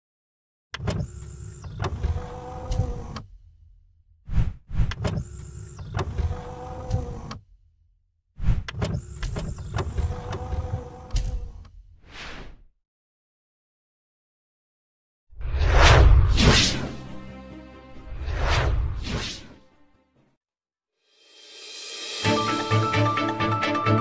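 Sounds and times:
motorised whirring slide: 0.8s - 3.4s, 4.4s - 7.4s, 8.6s - 11.7s.

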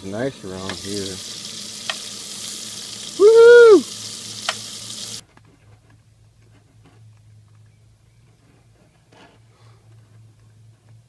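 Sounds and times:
bacon sizzling in a frying pan: 0.0s - 5.2s.

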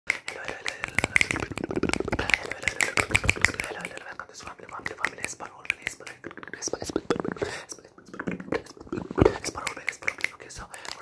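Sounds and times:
finger snaps and hand clicks: 0.1s - 6.3s, 9.5s - 11.0s.

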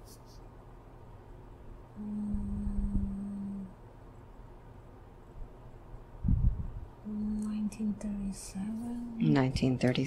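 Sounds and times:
woman humming: 1.9s - 3.8s, 7.0s - 9.2s.

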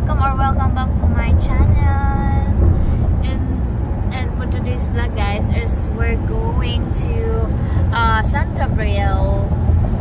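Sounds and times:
woman speaking: 0.0s - 2.6s, 3.2s - 9.5s
road noise inside car: 0.0s - 10.0s.

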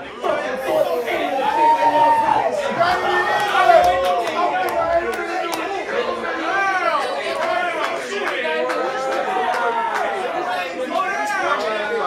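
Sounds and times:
men talking and calling out: 0.0s - 5.4s.

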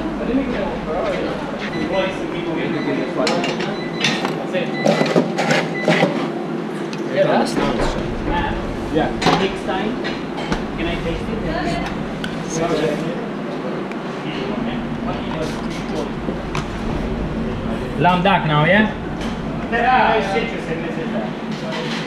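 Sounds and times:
extraction fan hum: 0.0s - 4.6s, 6.5s - 22.0s
voices in background: 0.0s - 5.2s.

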